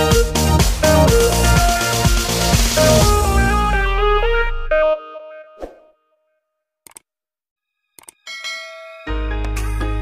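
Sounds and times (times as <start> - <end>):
background music: 0.0 - 5.8, 8.4 - 10.0
ringing chime: 8.2 - 9.3.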